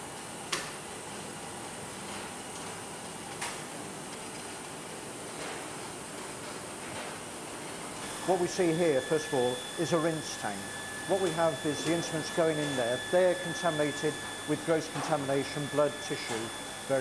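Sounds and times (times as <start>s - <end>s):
steady machine hiss: 8.0s - 17.0s.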